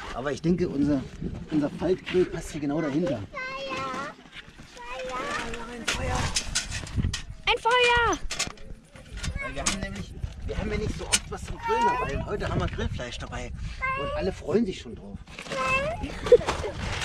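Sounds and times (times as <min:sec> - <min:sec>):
wind buffeting microphone: 0:00.0 - 0:03.8, 0:04.9 - 0:17.0
metal grill clicking and rustling: 0:05.0 - 0:10.0
child calling out: 0:11.6 - 0:12.3, 0:13.8 - 0:14.2, 0:15.5 - 0:16.0.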